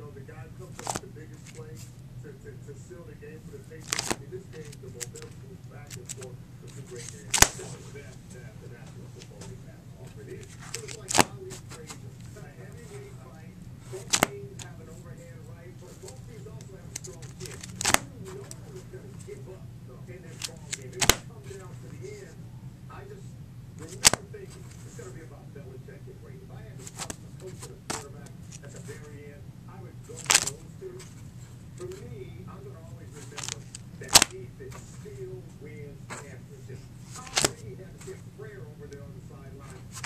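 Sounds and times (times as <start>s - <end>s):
plastic pages rustling: 0.6s - 1.9s, 3.6s - 19.4s, 20.2s - 22.3s, 23.8s - 25.3s, 26.7s - 29.2s, 30.0s - 40.0s
page snapping: 0.7s - 1.8s, 3.6s - 8.2s, 8.8s - 13.2s, 13.8s - 14.8s, 15.9s - 19.4s, 20.2s - 22.2s, 23.8s - 25.1s, 26.8s - 29.2s, 30.1s - 31.2s, 31.8s - 32.2s, 33.0s - 35.2s, 37.0s - 38.2s.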